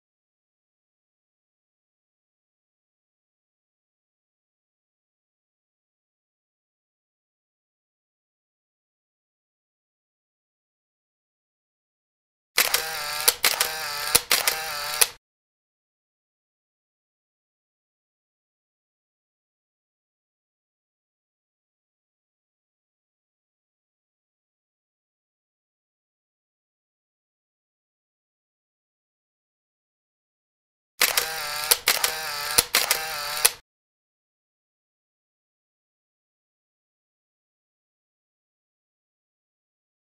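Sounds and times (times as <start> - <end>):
camera shutter and motor-wind: 12.6 - 15.2, 31.0 - 33.6.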